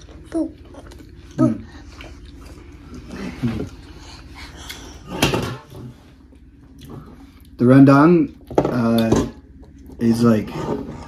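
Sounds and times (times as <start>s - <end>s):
man eating: 0.0s - 7.6s, 8.2s - 11.0s
steady low hum: 0.0s - 11.0s.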